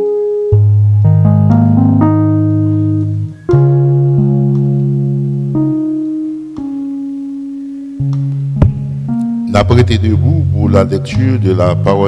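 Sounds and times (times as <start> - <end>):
keyboard playing sustained chords: 0.0 - 12.0.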